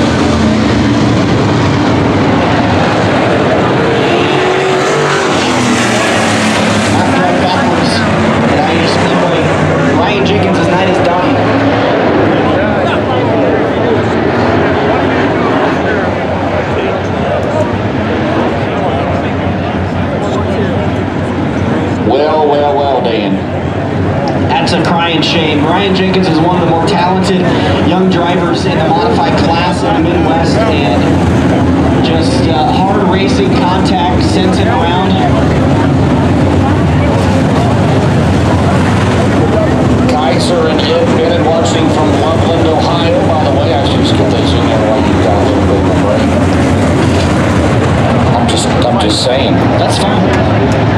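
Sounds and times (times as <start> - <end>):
race car engines droning: 0.0 - 50.9
voices: 0.0 - 50.9.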